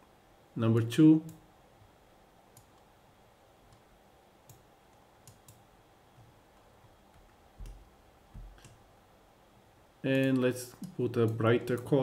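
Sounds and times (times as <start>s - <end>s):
computer mouse clicks: 2.5s - 2.9s, 3.7s - 5.6s, 6.2s - 7.8s, 8.4s - 8.8s, 10.1s - 12.0s.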